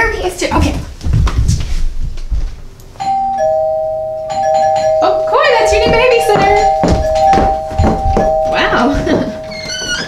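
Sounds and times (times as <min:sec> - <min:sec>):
footsteps thudding on floor: 0:00.5 - 0:02.7, 0:05.3 - 0:10.0
two-note doorbell chime: 0:03.0 - 0:10.0.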